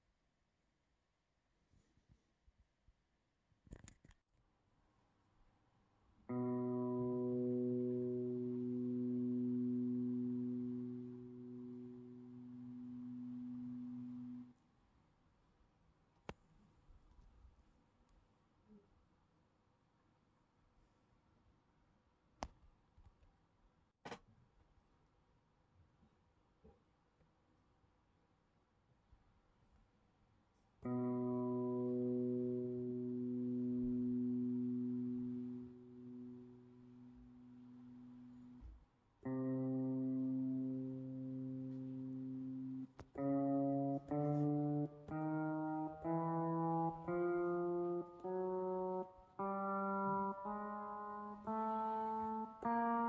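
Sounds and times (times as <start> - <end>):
low pedal steel guitar note: 6.3 - 14.5, 39.3 - 53.0.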